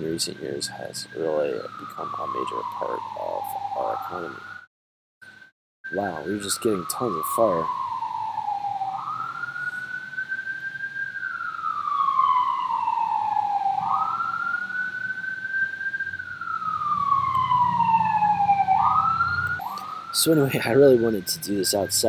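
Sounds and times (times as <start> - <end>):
fire engine siren wailing: 0.0 - 4.7, 5.9 - 22.0.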